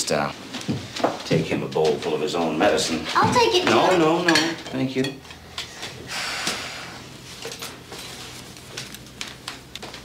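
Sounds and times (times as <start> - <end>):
dishes and cutlery clinking: 1.0 - 6.0.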